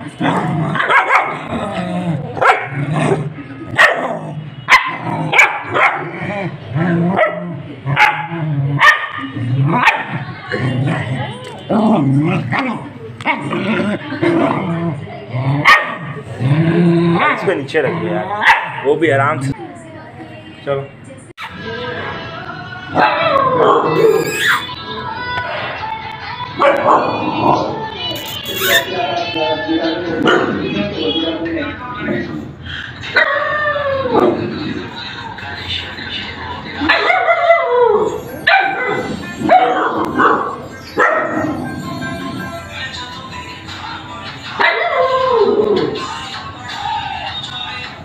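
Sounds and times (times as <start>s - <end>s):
dog barking: 0.8s - 1.4s, 2.4s - 2.8s, 3.8s - 4.1s, 4.7s - 6.1s, 7.2s - 10.2s, 15.6s - 16.2s, 18.4s - 18.9s, 23.0s - 24.2s, 36.9s - 37.6s, 38.5s - 41.4s
puppy whining yelp: 23.9s - 24.7s, 28.2s - 28.9s.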